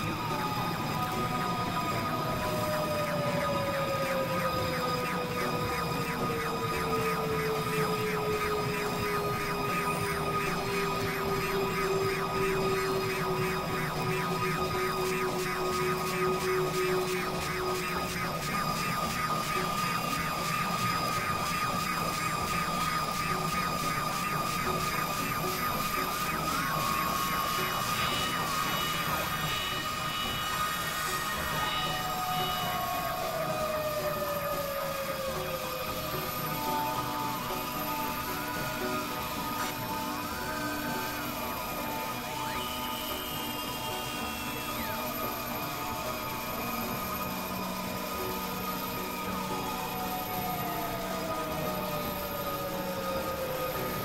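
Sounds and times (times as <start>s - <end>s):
fast regular electronic pulsing: 0.0s - 54.0s
steady high electronic tones: 0.0s - 54.0s.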